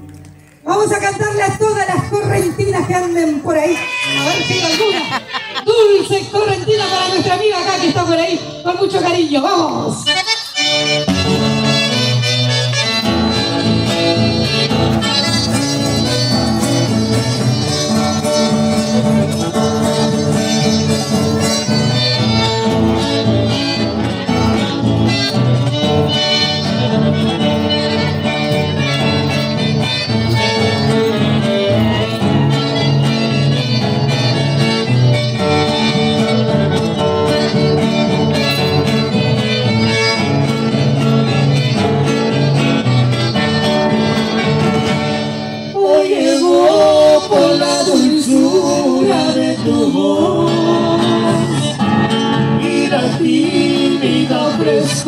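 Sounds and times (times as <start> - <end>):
accordion: 0.0 - 55.0
acoustic guitars playing: 0.0 - 55.0.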